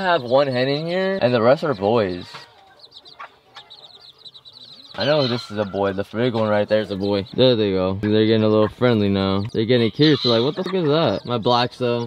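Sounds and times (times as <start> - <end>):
chicks peeping: 0.0 - 12.0
hen clucking softly: 0.0 - 12.0.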